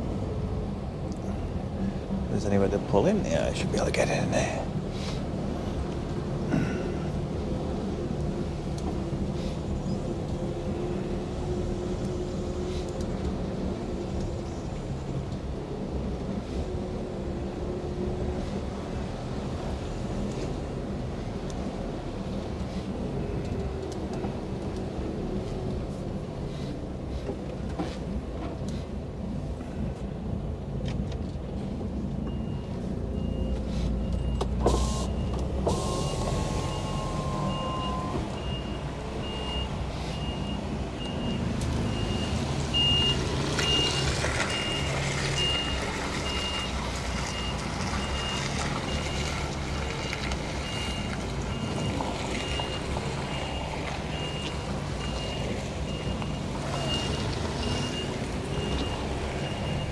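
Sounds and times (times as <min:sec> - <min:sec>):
reversing alarm beeping: 0:32.3 - 0:49.2, 0:50.6 - 0:59.9.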